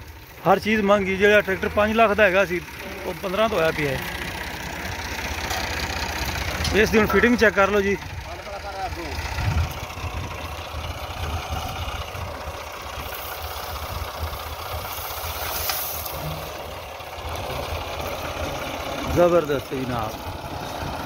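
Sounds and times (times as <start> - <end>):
tractor diesel engine idling: 0.0 - 21.0.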